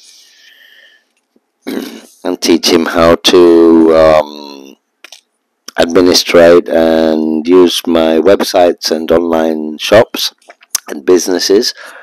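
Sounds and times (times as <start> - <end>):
man breathing in: 0.0 - 1.1, 11.8 - 12.0
man speaking: 1.7 - 4.8, 5.7 - 12.0.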